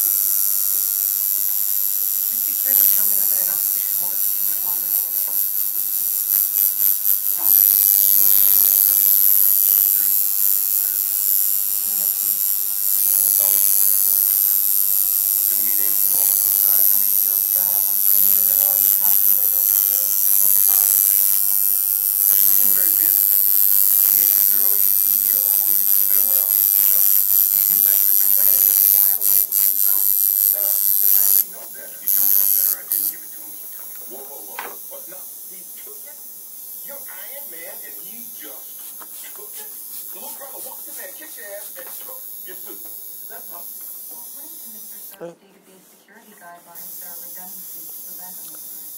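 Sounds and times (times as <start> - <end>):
tattoo machine buzzing: 0.0 - 45.2, 46.7 - 48.9.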